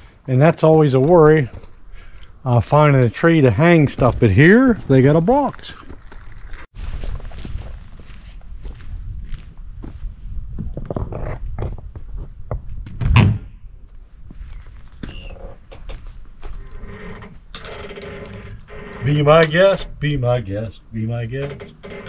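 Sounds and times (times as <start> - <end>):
footsteps on dry leaves: 4.8 - 10.1
door creaking: 13.0 - 13.6, 15.0 - 16.0, 16.6 - 22.0.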